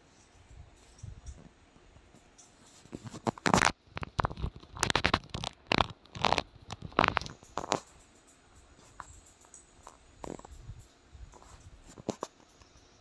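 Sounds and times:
scratching and rubbing on microphone: 2.6 - 8.0, 9.8 - 12.5.

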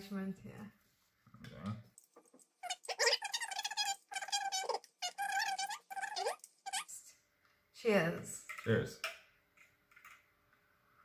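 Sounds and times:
spoon squealing against glass mug: 2.6 - 7.0.

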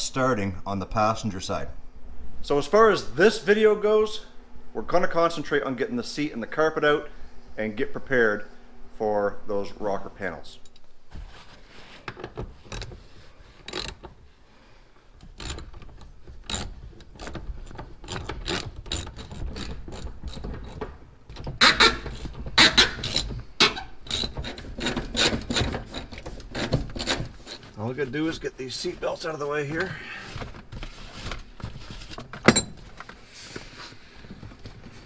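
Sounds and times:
hand ratchet clicking: 13.7 - 14.1, 15.2 - 20.8, 21.6 - 27.6
tool scraping against carpet: 21.6 - 29.5.

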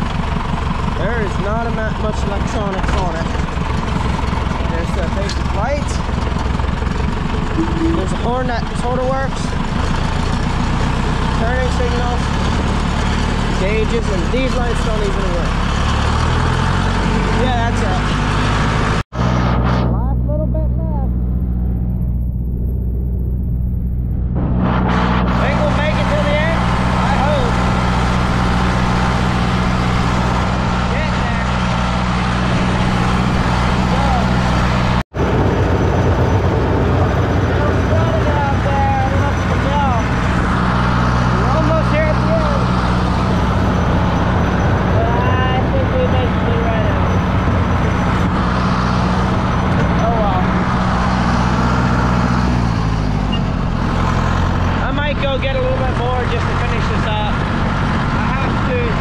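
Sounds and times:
tractor diesel engine running: 0.0 - 59.0
short pitched squeaks: 53.2 - 53.6.

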